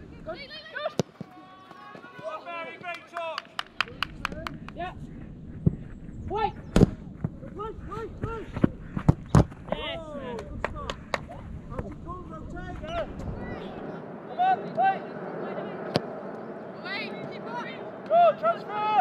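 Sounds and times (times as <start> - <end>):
players shouting calls: 0.4 - 4.9, 12.8 - 19.0
wind rumble on microphone: 3.9 - 18.0.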